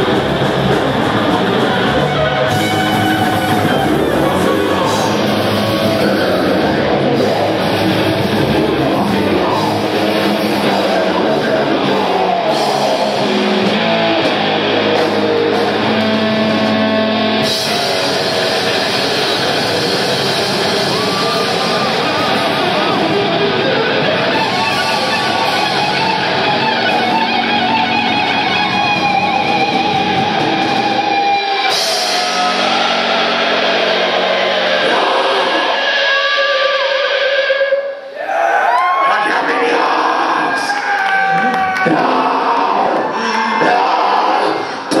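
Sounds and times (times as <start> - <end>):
rising high-pitched notes: 0.0 - 36.8
metal band playing: 0.0 - 37.7
held high guitar note: 1.9 - 11.0.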